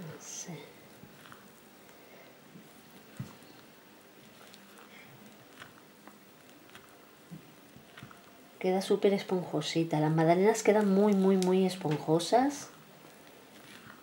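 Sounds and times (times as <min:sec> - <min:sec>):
spatula scraping batter: 0:01.0 - 0:09.4, 0:10.3 - 0:14.0.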